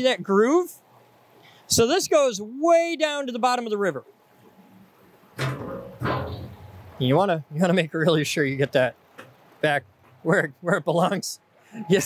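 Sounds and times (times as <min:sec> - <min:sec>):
steel deck cover clanging: 0:05.4 - 0:06.8.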